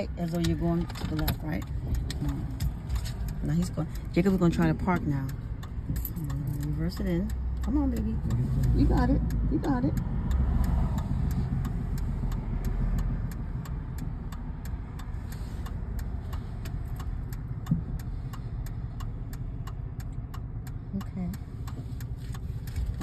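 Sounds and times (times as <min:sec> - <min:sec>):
car engine idling: 0:00.0 - 0:23.0
turn signal ticking: 0:00.0 - 0:23.0.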